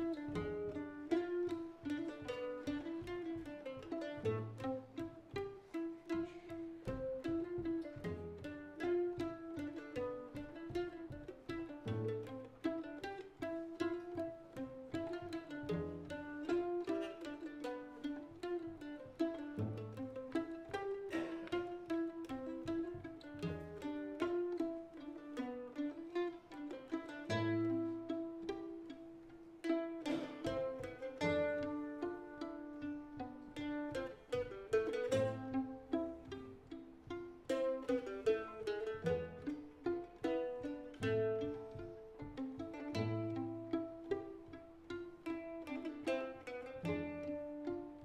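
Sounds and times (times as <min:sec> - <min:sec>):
bowed violin melody: 0:00.0 - 0:48.0
low cello notes: 0:00.0 - 0:48.0
plucked mandolin notes: 0:00.0 - 0:48.0.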